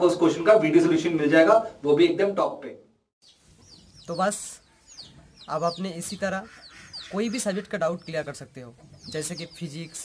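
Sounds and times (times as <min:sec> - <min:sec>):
small birds chirping: 0:03.2 - 0:10.0
chicken clucking: 0:03.5 - 0:09.9.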